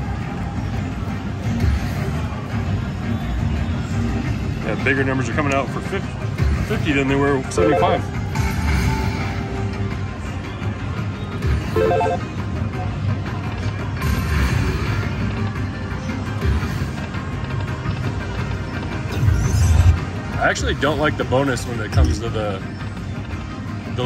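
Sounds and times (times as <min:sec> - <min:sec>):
slot machine electronic music: 0:07.4 - 0:08.2, 0:11.7 - 0:12.4
casino background noise: 0:07.5 - 0:08.0, 0:11.8 - 0:12.2.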